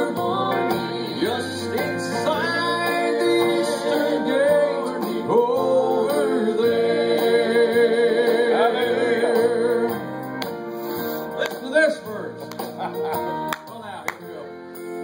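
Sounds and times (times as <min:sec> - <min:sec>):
vocal group singing in harmony: 0:00.0 - 0:11.2
instrumental accompaniment: 0:00.0 - 0:15.0.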